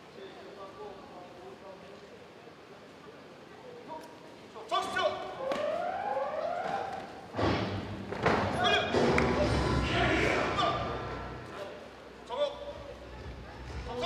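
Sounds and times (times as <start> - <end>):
people shouting: 8.5 - 11.5.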